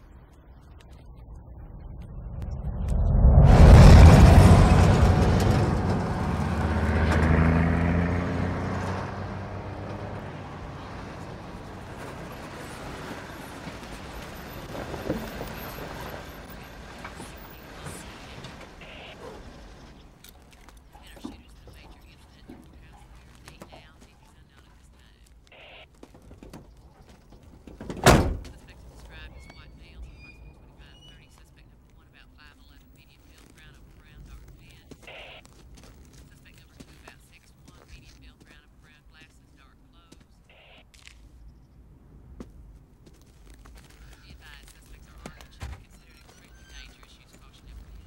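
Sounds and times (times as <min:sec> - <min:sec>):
truck passing on highway: 0:01.6 - 0:20.5
car door slamming: 0:27.8 - 0:28.6.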